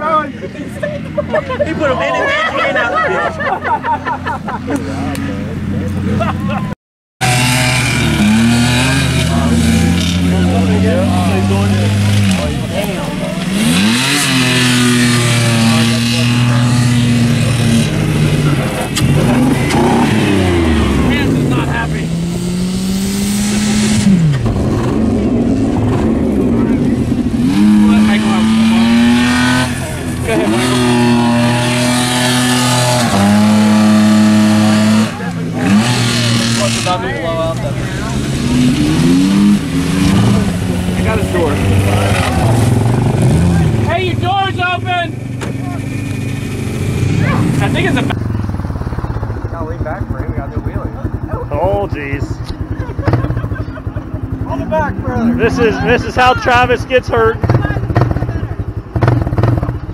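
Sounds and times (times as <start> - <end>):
car engines revving hard: 0.0 - 59.9.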